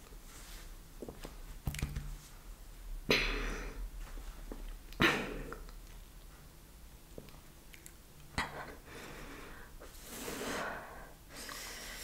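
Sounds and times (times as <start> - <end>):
wet mouth chewing sounds: 7.2 - 8.4.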